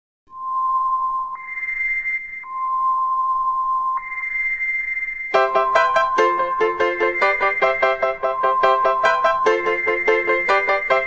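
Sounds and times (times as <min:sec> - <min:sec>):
electronic tone switching pitch: 0:00.3 - 0:11.0.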